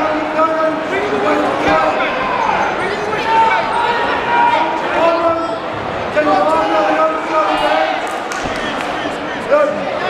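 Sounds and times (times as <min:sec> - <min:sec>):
man's voice echoing: 0:00.0 - 0:03.8, 0:04.4 - 0:08.0, 0:08.6 - 0:10.0.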